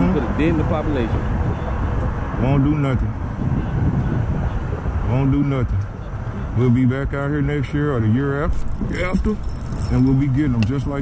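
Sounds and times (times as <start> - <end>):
road traffic rumble: 0.0 - 11.0
wind buffeting microphone: 0.0 - 11.0.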